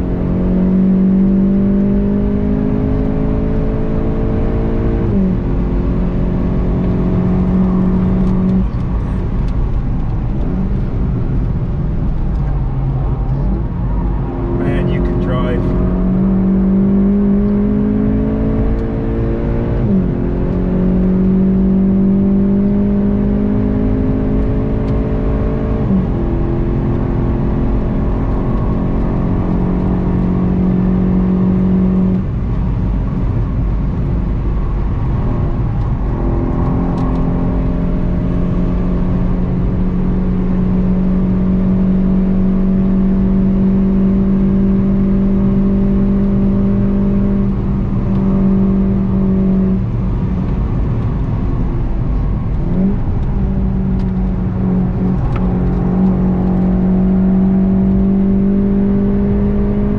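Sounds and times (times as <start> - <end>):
car engine pulling hard: 0.0 - 59.9
tyre and road noise: 0.0 - 59.9.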